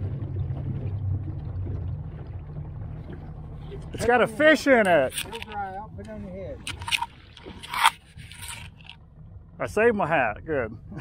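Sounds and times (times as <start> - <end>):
fabric scraping microphone: 6.7 - 8.9.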